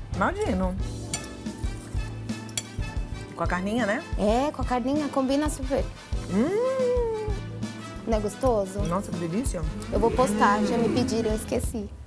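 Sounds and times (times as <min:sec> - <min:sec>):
soft background music: 0:00.0 - 0:12.0
cutlery clicking against plate: 0:01.1 - 0:01.4, 0:02.4 - 0:02.8.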